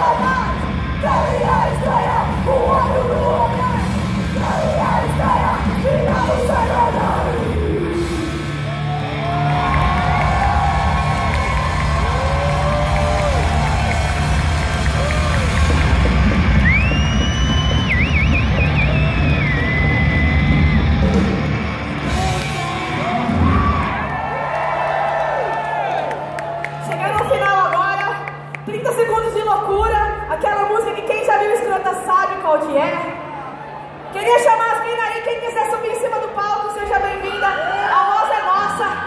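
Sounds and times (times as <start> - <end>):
crowd yelling and whooping: 0.0 - 27.6, 33.1 - 34.4, 37.0 - 39.0.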